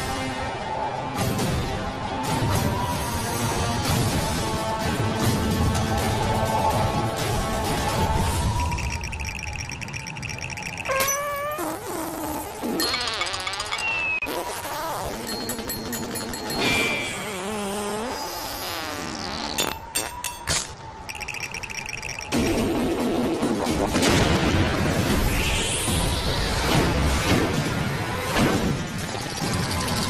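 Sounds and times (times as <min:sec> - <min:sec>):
background music: 0:00.0 - 0:11.2
gliding cartoon sound effects: 0:08.3 - 0:18.4.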